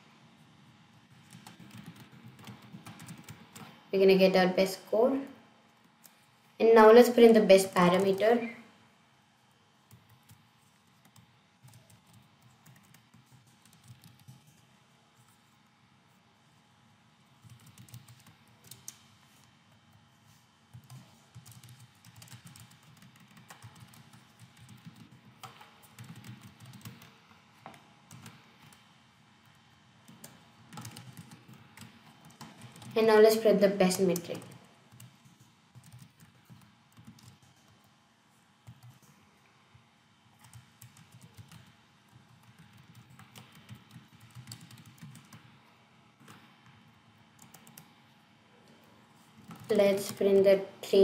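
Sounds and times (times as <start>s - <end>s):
computer keyboard typing: 1.1s - 3.8s, 7.6s - 8.5s, 9.9s - 14.6s, 17.4s - 19.0s, 20.7s - 27.2s, 28.1s - 37.9s, 38.6s - 39.0s, 40.4s - 45.5s, 47.4s - 47.9s, 49.4s - 50.4s.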